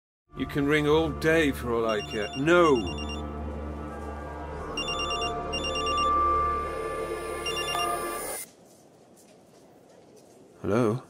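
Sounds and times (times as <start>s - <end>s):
music underscore: 0.3s - 8.4s
telephone ringing: 1.9s - 3.2s, 4.8s - 6.3s, 7.4s - 8.4s.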